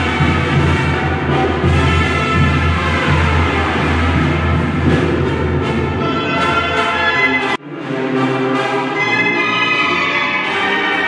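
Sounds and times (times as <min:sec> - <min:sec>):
band with brass and drums: 0:00.0 - 0:11.0.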